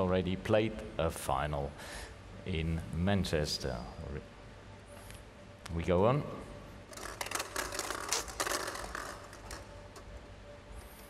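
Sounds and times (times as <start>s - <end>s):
plastic balls clattering in glass bowl: 6.9s - 10.1s.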